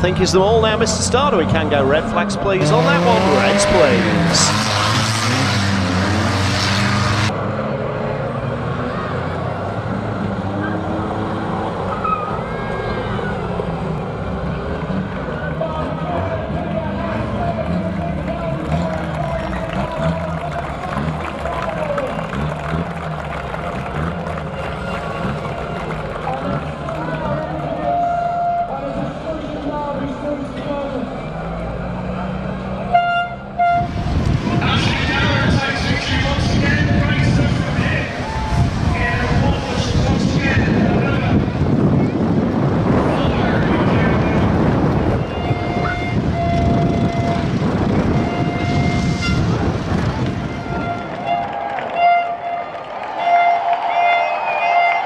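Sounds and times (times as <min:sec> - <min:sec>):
van engines revving: 0:00.0 - 0:54.8
vehicle horn tooting: 0:02.6 - 0:05.1, 0:27.7 - 0:29.0, 0:32.9 - 0:34.0, 0:45.1 - 0:55.0.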